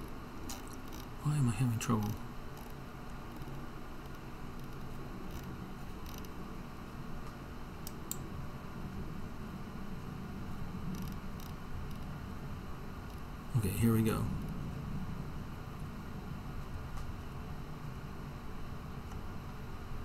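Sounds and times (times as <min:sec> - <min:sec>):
low room hum: 0:00.0 - 0:20.0.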